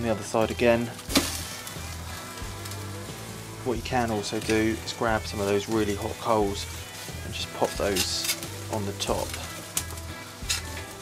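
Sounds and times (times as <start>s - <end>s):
background music: 0.0s - 11.0s
meat sizzling and crackling: 0.0s - 11.0s
steak thumping onto charcoal: 0.4s - 11.0s.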